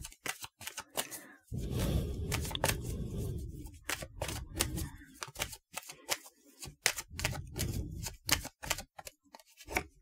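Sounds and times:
cards rubbing: 0:00.0 - 0:01.3, 0:02.2 - 0:10.0
cards shuffling: 0:00.0 - 0:01.3, 0:02.3 - 0:02.8, 0:03.6 - 0:10.0.

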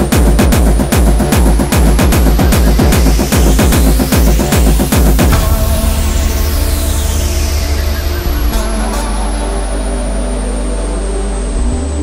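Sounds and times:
sharp hits: 0:00.0 - 0:10.5
heavy bass drone: 0:00.0 - 0:12.0
held synth tones: 0:01.1 - 0:11.9
high hiss: 0:01.6 - 0:11.7.

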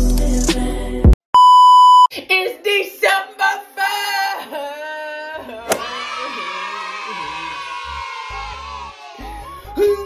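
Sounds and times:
music: 0:00.0 - 0:01.2, 0:07.4 - 0:10.0.

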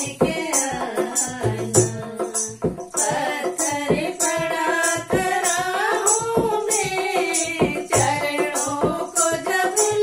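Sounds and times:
hand drum: 0:00.0 - 0:10.0
women singing devotional song: 0:00.0 - 0:10.0.

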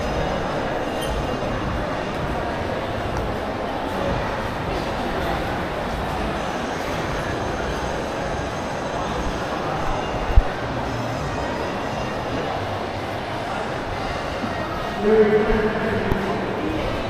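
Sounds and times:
shopping mall ambient rumble: 0:00.0 - 0:17.0.

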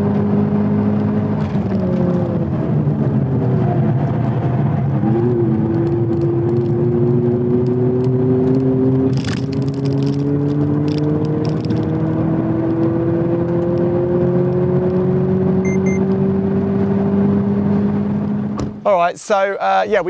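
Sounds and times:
tyre and road noise: 0:00.0 - 0:20.0
high double beep: 0:15.6 - 0:16.0.

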